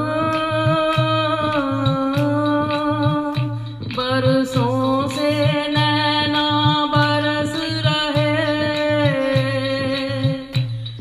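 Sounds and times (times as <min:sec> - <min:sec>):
woman singing through microphone: 0:00.0 - 0:10.8
steady drum beat: 0:00.0 - 0:11.0.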